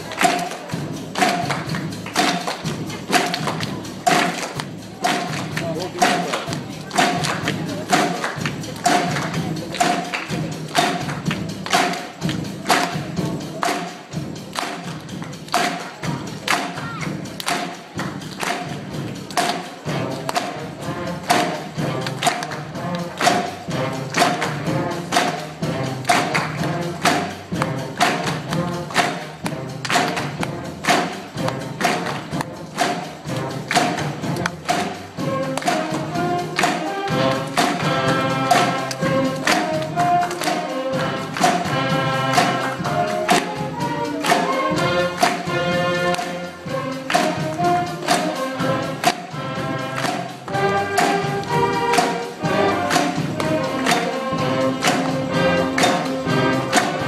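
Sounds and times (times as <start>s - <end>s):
audience clapping along: 0.0s - 57.0s
concert band playing: 0.0s - 57.0s.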